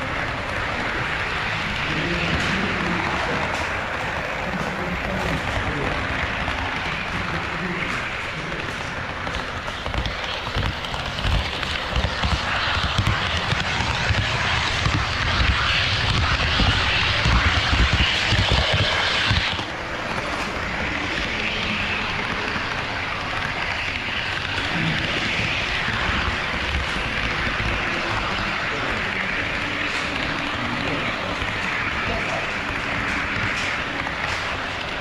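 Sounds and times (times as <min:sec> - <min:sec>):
murmur of voices: 0:00.0 - 0:15.9
model train rolling rumble: 0:00.0 - 0:35.0.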